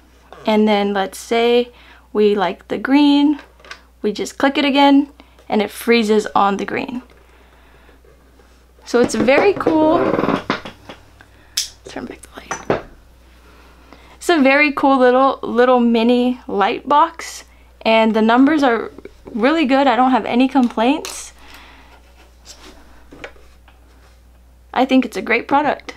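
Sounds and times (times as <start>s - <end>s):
low steady hum: 0.0s - 25.9s.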